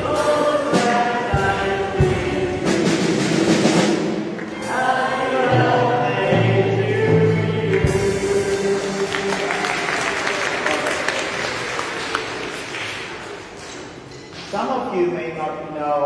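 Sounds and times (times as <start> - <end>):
choir singing long notes: 0.0 - 12.6.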